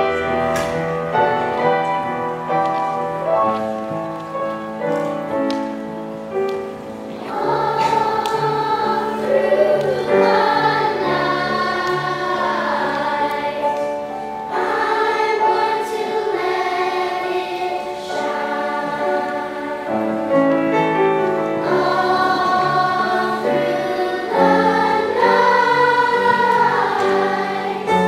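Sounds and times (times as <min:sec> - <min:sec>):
children's choir singing: 0:00.0 - 0:28.0
piano accompaniment: 0:00.0 - 0:28.0.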